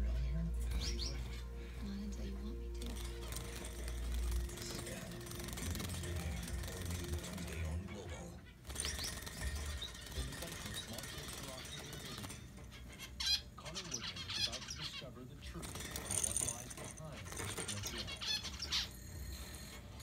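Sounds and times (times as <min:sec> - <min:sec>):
young bird chirping: 0:00.6 - 0:02.1, 0:12.2 - 0:15.1, 0:17.6 - 0:19.0.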